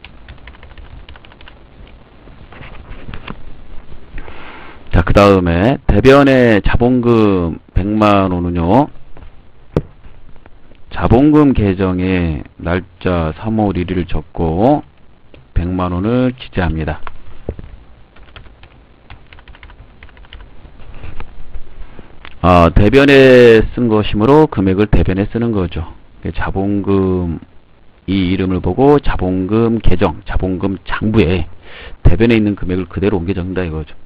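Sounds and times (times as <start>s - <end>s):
keyboard keystrokes clicking: 0.2s - 1.6s, 18.2s - 20.4s
person speaking: 10.9s - 17.3s.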